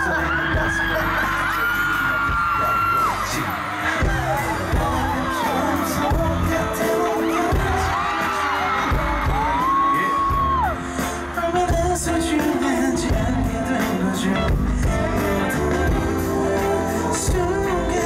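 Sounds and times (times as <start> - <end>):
crowd screaming and cheering: 0.0 - 18.0
live pop music with heavy bass: 0.0 - 18.0.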